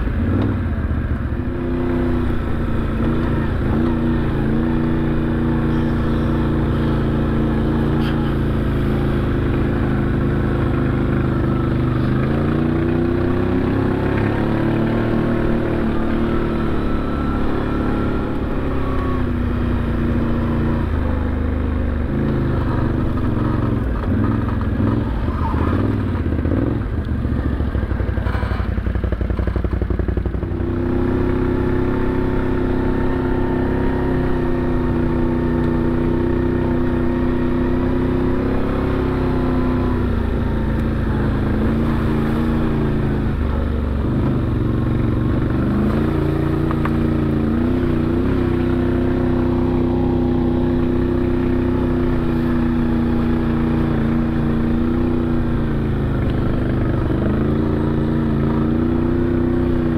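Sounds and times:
utility vehicle engine running: 0.0s - 59.9s.

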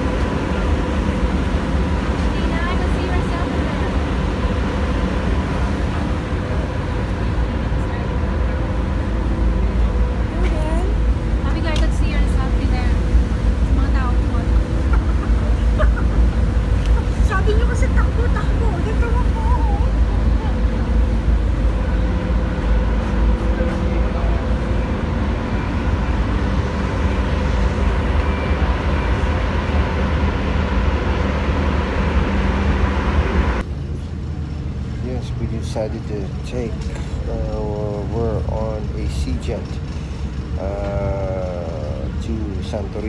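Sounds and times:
ferry engines humming: 0.0s - 43.0s.

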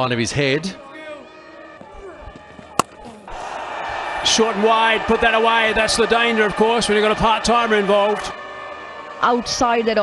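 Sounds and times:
stadium crowd noise: 0.0s - 10.0s
cricket bat striking ball: 2.6s - 3.2s.

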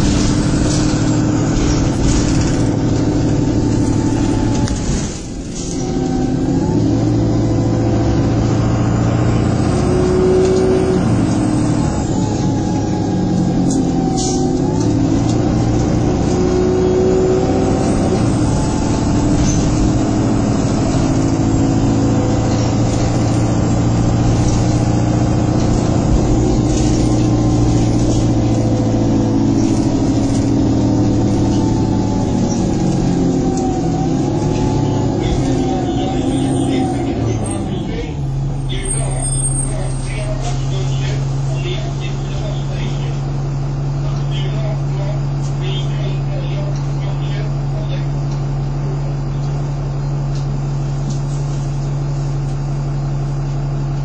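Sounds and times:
bus diesel engine running: 0.0s - 54.0s.

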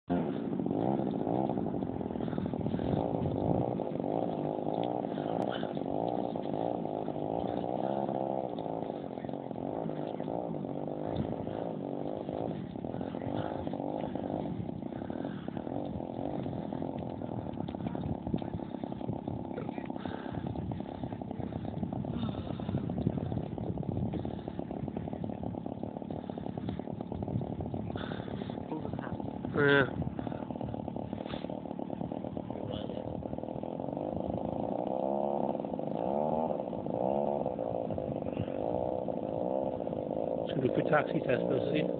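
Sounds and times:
model aeroplane petrol engine running: 0.1s - 41.9s.

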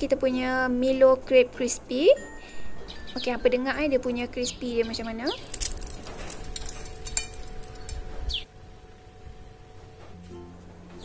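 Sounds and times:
soft background music: 0.0s - 11.0s
crisp pastry crackling: 5.0s - 8.1s.

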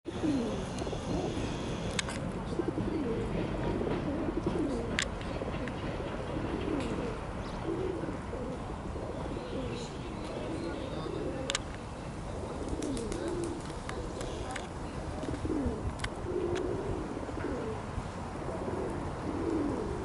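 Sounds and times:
pigeon cooing: 0.1s - 1.9s, 2.5s - 5.0s, 5.6s - 11.6s, 12.3s - 14.6s, 15.2s - 20.0s.

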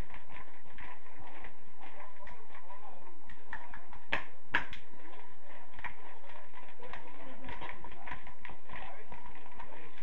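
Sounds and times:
sharp claps: 0.0s - 10.0s
steady murmur: 0.0s - 10.0s.

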